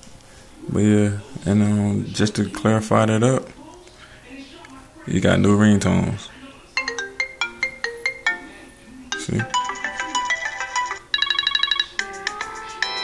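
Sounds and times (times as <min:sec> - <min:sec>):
phone ringtone melodies: 0:06.8 - 0:13.0.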